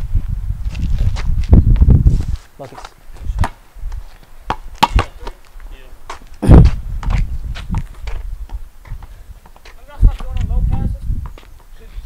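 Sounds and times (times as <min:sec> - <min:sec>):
basketball bouncing on concrete: 0:04.5 - 0:05.4, 0:06.1 - 0:11.8.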